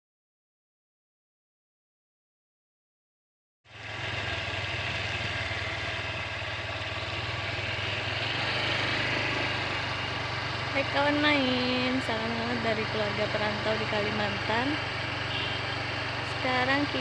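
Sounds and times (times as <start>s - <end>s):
engine idling: 3.7s - 17.0s.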